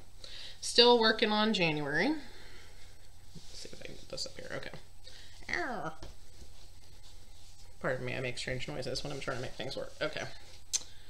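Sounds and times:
fabric rustling and rubbing: 0.8 - 11.0
person speaking: 3.4 - 6.1, 7.7 - 10.6.

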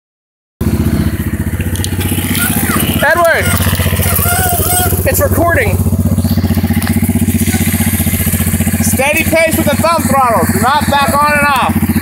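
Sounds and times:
quad bike engine idling: 0.6 - 12.0.

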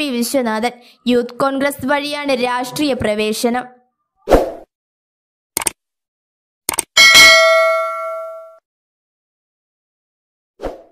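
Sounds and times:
notification bell ding: 7.0 - 8.6.

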